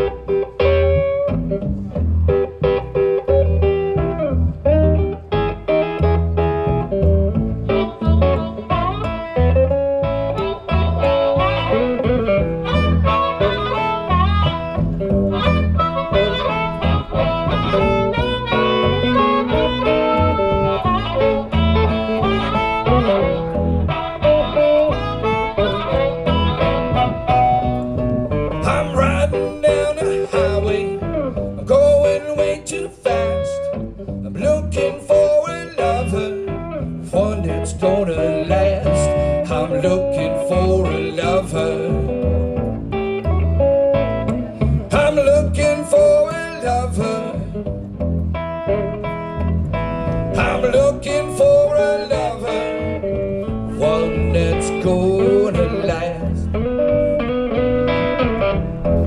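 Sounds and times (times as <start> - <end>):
blues harmonica: 0.0 - 59.0
electric guitar rhythm: 0.0 - 59.0
upright bass pulse: 0.0 - 59.0.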